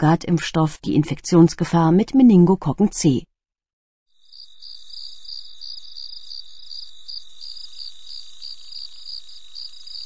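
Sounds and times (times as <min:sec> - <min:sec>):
insect chirping trill: 0:04.1 - 0:10.0.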